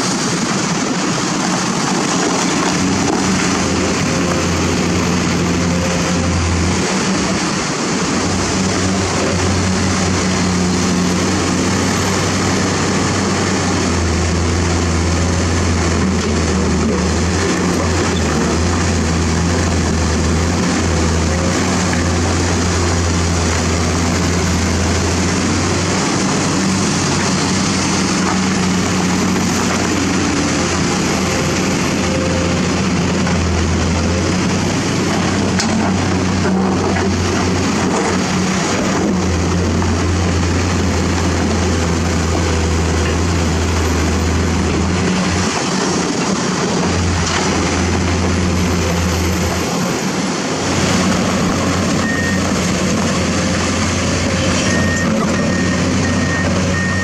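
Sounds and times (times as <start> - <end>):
excavator diesel engine droning: 0.0 - 57.0.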